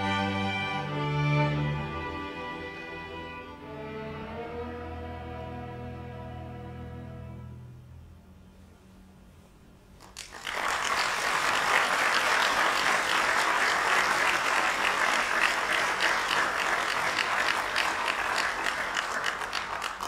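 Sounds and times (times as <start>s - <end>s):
audience applauding: 10.0s - 20.0s.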